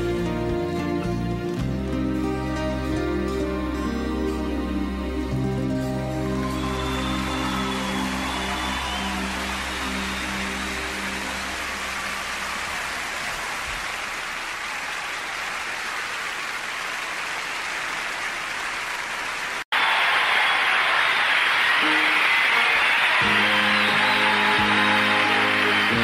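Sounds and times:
song ending: 0.0s - 12.7s, 21.8s - 26.0s
crowd applauding: 4.4s - 26.0s.

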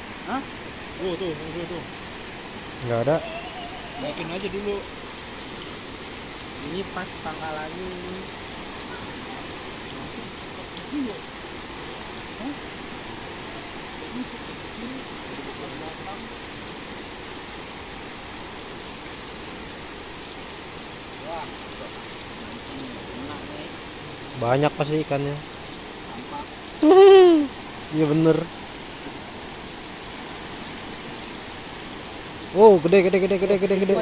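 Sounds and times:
river rushing: 0.0s - 34.0s
faint voices: 3.2s - 4.3s.

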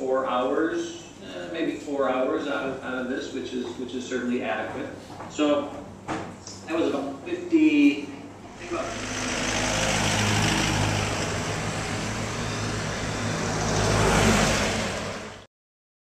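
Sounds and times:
low engine hum: 8.4s - 15.5s.

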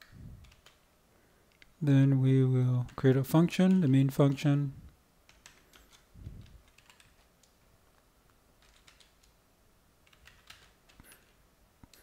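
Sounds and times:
keyboard typing: 0.4s - 0.9s, 5.2s - 7.6s, 8.6s - 9.4s, 10.0s - 12.0s.

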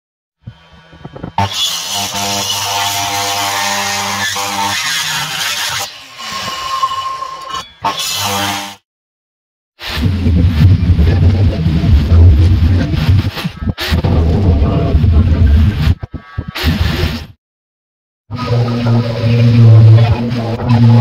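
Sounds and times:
electric saw cutting wood: 1.0s - 8.8s, 18.3s - 21.0s.

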